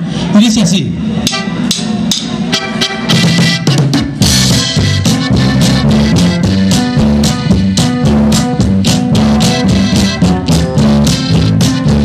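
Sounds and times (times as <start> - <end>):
electric bass: 0.9 - 12.0
drum kit beat: 1.2 - 12.0
button accordion: 2.5 - 7.9.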